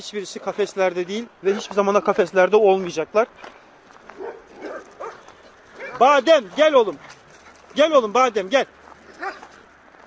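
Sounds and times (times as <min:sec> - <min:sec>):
faint dog barks: 0:01.4 - 0:01.8, 0:04.1 - 0:06.2, 0:09.1 - 0:09.6.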